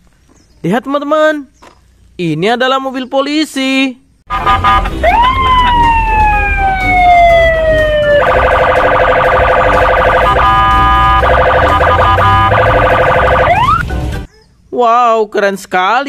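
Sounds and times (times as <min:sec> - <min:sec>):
police siren wailing: 0:04.3 - 0:13.9.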